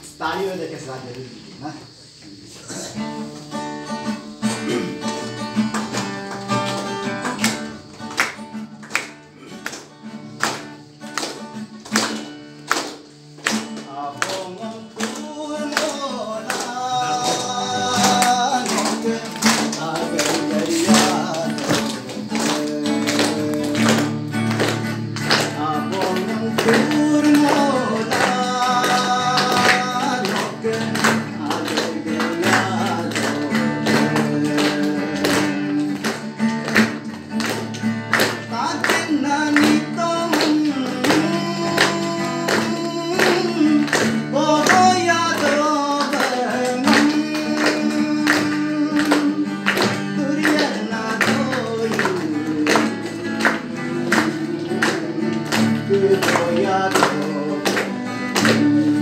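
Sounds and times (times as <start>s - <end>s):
acoustic guitar strumming chords: 1.5s - 59.0s
man singing: 13.6s - 36.8s, 38.2s - 59.0s.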